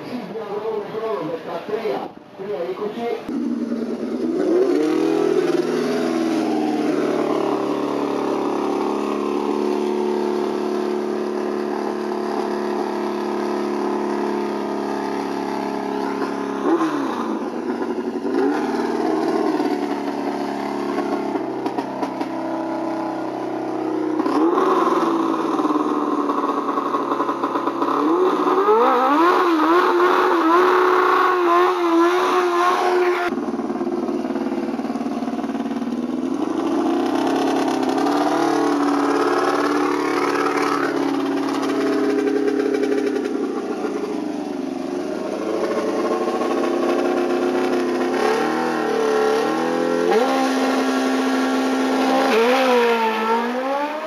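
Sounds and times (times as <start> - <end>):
race car engine idling and revving: 0.0 - 54.0.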